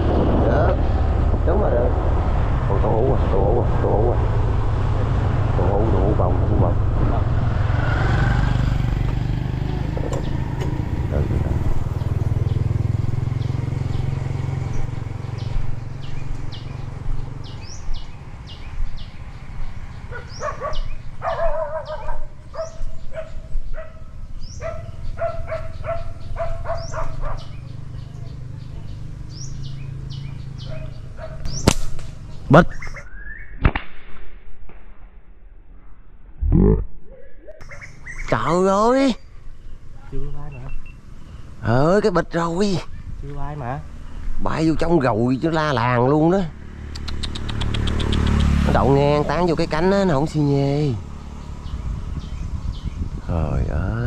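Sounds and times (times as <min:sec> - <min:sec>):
wind on microphone: 0:00.0 - 0:05.6, 0:51.5 - 0:54.0
small birds chirping: 0:04.6 - 0:33.6, 0:36.5 - 0:54.0
scooter engine running: 0:07.1 - 0:31.5, 0:46.5 - 0:53.1
sharp snap: 0:31.4 - 0:32.2, 0:33.6 - 0:35.1, 0:46.9 - 0:48.6.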